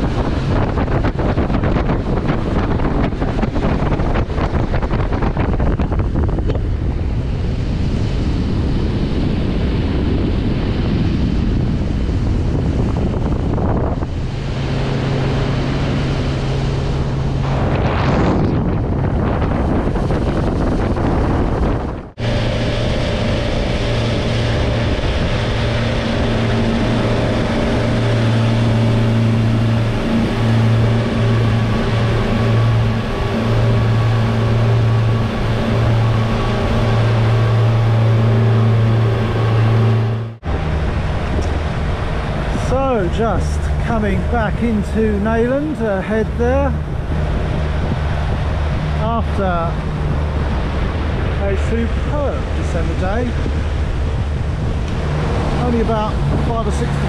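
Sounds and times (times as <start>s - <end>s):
outboard motors humming: 0.0s - 57.0s
water rushing past hull: 0.0s - 57.0s
wind on microphone: 0.0s - 57.0s.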